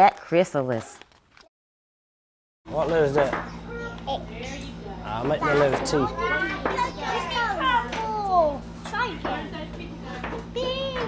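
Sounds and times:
steady low hum: 2.7s - 11.0s
children talking: 3.4s - 11.0s.

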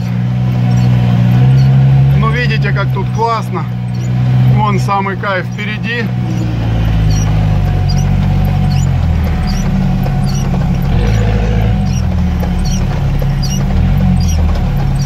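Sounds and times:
car engine drone: 0.0s - 15.0s
windshield wipers squeaking: 0.0s - 15.0s.

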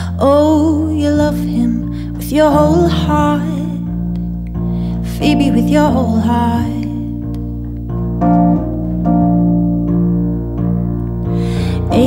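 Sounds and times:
electric piano chords: 0.0s - 12.0s
low bass notes: 0.0s - 12.0s.

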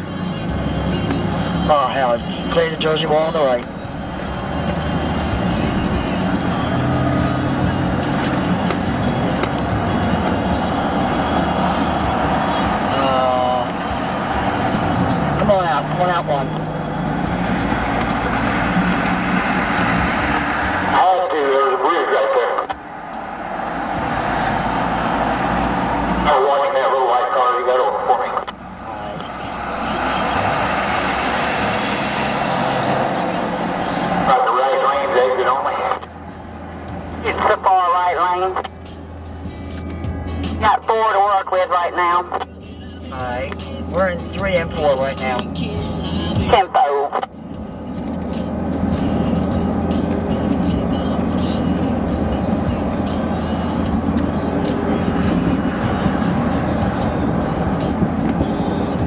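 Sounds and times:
indistinct voices: 0.0s - 36.3s, 36.9s - 39.0s, 40.4s - 59.0s
road and engine noise in car: 0.0s - 59.0s.

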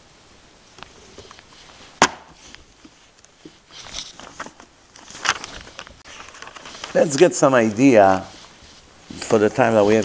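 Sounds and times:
book knocking on wooden table: 2.0s - 2.3s
faint handling ticks: 5.0s - 10.0s.

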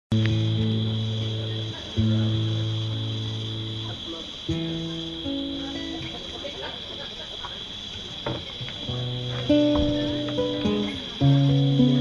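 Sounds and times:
acoustic guitar chords: 0.1s - 7.0s, 8.1s - 12.0s.

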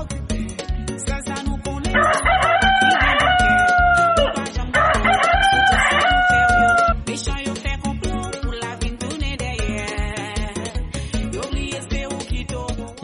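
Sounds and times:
music with steady beat: 0.0s - 13.0s
rooster crowing: 2.0s - 7.0s.

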